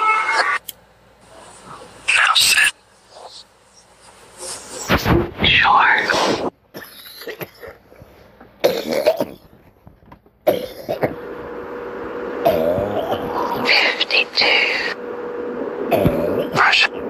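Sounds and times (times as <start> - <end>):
faint steady hum: 0.0 - 17.0
person's voice in short bursts: 12.5 - 15.0, 15.9 - 17.0.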